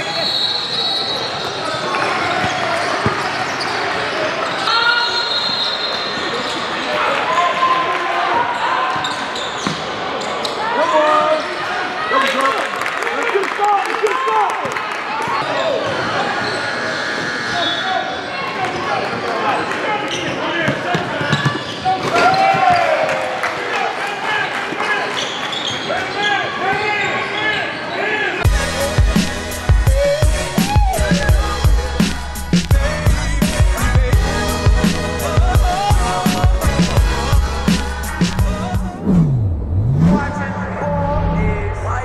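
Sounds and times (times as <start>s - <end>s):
voices of players and spectators: 0.0s - 42.0s
shoe squeaks: 2.4s - 6.7s, 9.0s - 10.6s, 21.2s - 22.0s, 25.2s - 28.0s
players' voices: 23.8s - 42.0s
hip-hop music with heavy beat: 28.4s - 39.4s.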